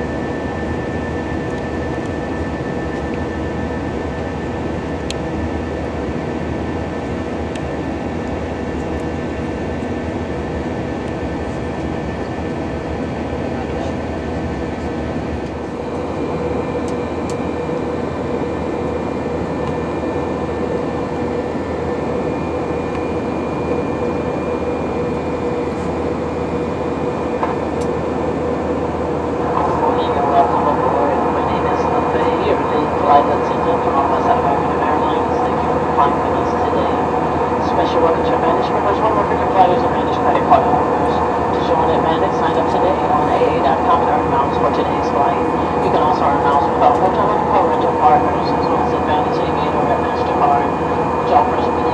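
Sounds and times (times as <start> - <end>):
announcement over cabin speakers: 0.0 - 51.9
jet engine cabin noise: 0.0 - 51.9.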